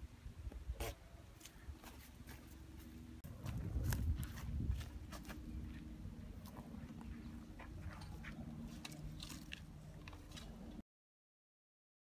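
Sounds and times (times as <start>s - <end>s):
soft crunching clicks: 6.4s - 10.8s.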